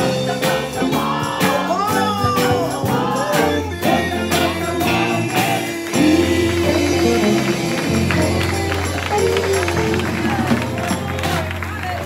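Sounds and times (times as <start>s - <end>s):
person singing gospel: 0.0s - 11.2s
keyboard: 0.0s - 12.0s
steady bass: 0.0s - 12.0s
hands clapping in rhythm: 4.3s - 12.0s.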